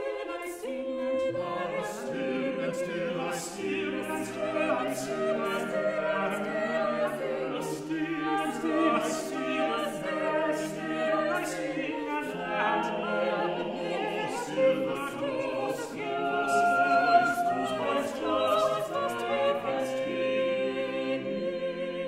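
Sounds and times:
vocal ensemble singing a cappella: 0.0 - 22.0.

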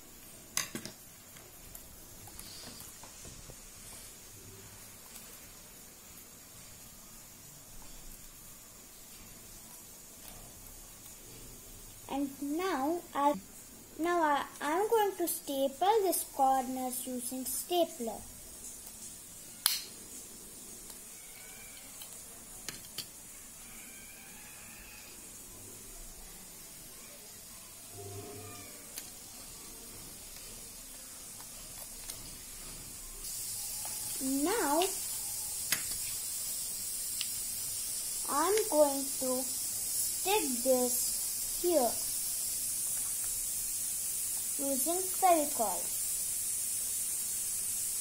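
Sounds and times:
steady hiss: 0.0 - 48.0
person speaking: 12.1 - 13.4, 14.0 - 18.2, 34.2 - 35.0, 38.2 - 39.5, 40.2 - 42.0, 44.6 - 46.0.

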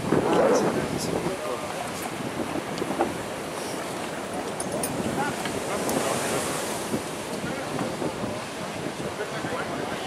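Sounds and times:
ocean surf rushing: 0.0 - 10.0
wind buffeting microphone: 0.0 - 10.0.

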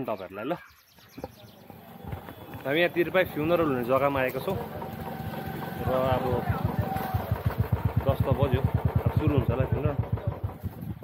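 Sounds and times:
motorcycle engine idling: 1.2 - 11.0.

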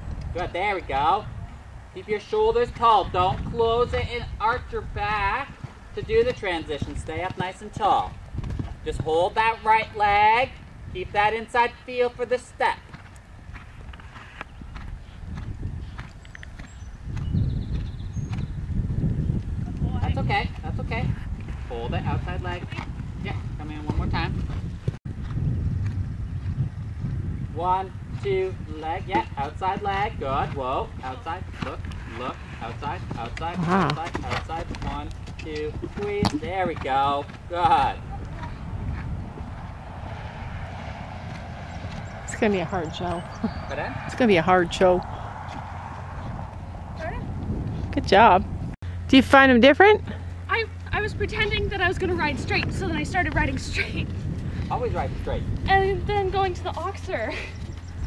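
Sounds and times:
wind rumble on microphone: 0.0 - 58.0
horse hoofbeats on sand: 2.6 - 11.7, 12.3 - 39.8.

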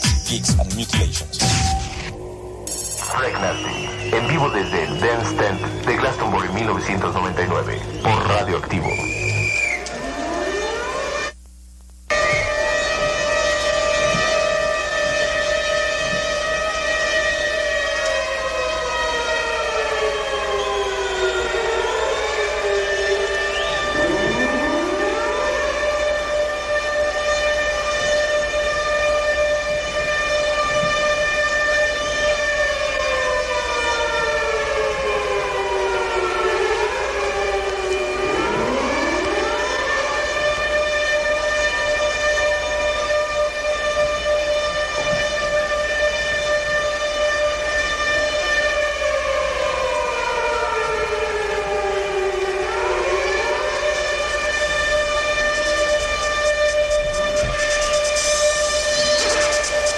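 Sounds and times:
siren-like electronic wail: 1.0 - 11.4, 12.1 - 59.9.

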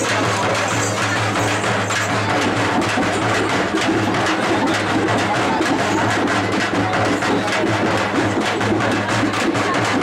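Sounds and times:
dense noisy din: 0.0 - 10.0
rapid drum beats: 0.0 - 10.0.

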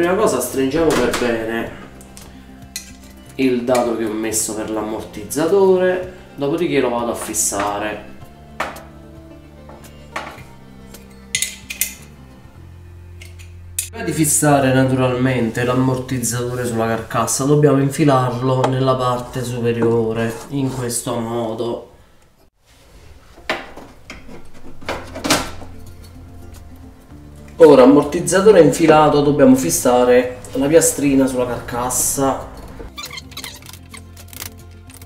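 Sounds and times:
background music: 0.0 - 22.4, 23.6 - 35.0.

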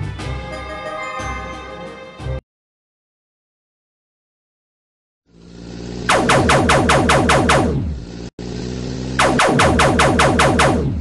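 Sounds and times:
falling mechanical pulses: 5.3 - 11.0.

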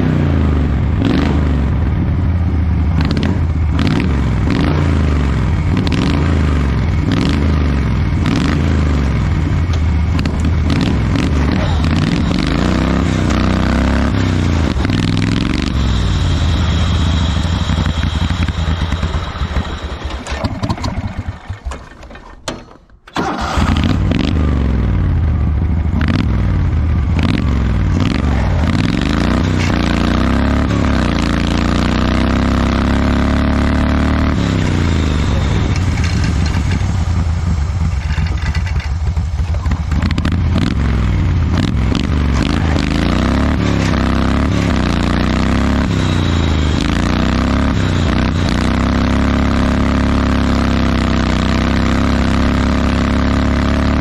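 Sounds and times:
garden tractor engine running: 2.3 - 54.0.

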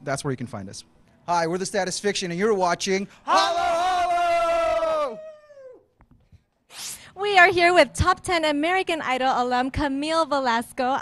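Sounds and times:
men shouting: 3.2 - 5.7.

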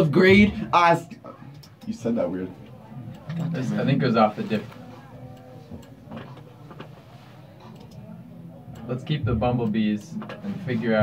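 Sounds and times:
murmured voices: 0.0 - 11.0
faint clicks: 7.6 - 8.1.

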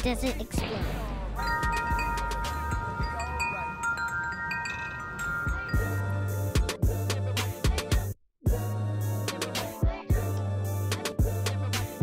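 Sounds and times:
metal tube wind chimes ringing: 1.4 - 7.1.

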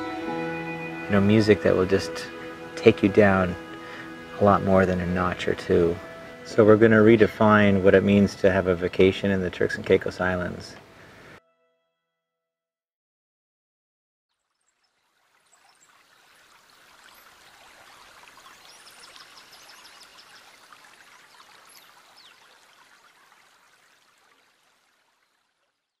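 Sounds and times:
running water: 0.0 - 11.4, 14.3 - 26.0.

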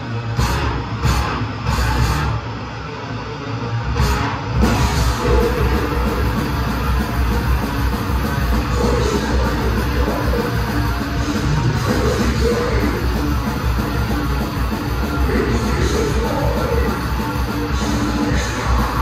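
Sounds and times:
death metal band playing live: 0.0 - 19.0.

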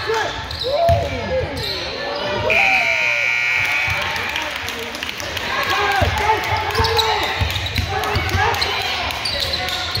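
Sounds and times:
scoreboard buzzer: 2.5 - 4.3.

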